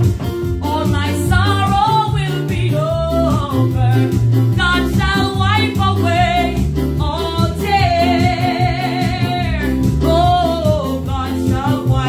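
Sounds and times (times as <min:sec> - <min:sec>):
bass line: 0:00.0 - 0:12.0
electronic keyboard accompaniment: 0:00.0 - 0:12.0
woman singing gospel: 0:00.6 - 0:12.0.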